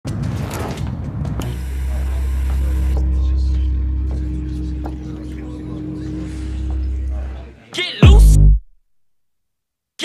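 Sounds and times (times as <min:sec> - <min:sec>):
loud low-pitched hum: 0:01.4 - 0:08.6.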